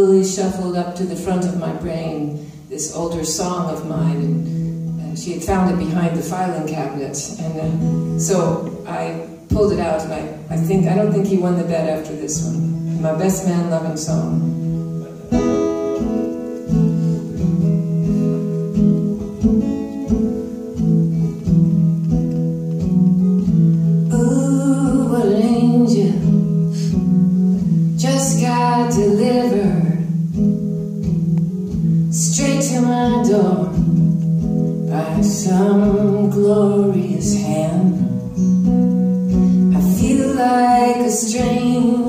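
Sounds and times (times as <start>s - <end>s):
woman singing: 0.0s - 14.5s, 24.1s - 27.1s, 28.0s - 30.3s, 32.1s - 34.1s, 34.8s - 38.4s, 39.6s - 42.0s
guitar playing: 0.0s - 42.0s.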